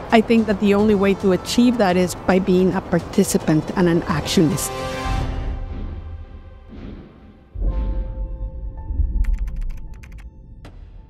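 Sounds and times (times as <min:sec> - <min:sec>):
deep low rumble: 0:05.5 - 0:11.0
sharp clicks: 0:09.2 - 0:10.3.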